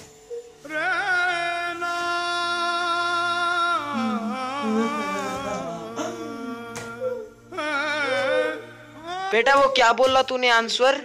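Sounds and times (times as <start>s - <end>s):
mournful wailing melody: 0.0s - 10.0s.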